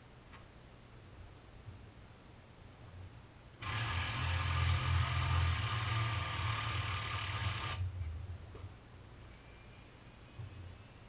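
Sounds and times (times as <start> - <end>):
motor-driven machine running: 3.6 - 7.8.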